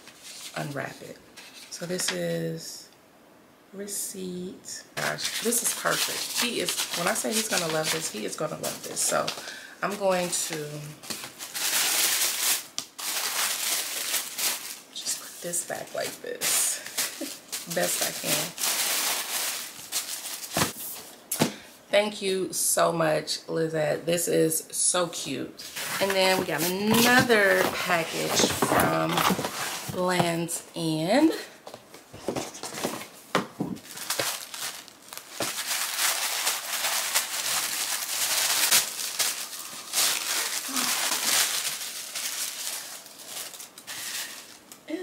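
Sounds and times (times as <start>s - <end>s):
tissue paper rustling: 5.2s - 21.1s, 25.6s - 30.2s, 33.8s - 44.6s.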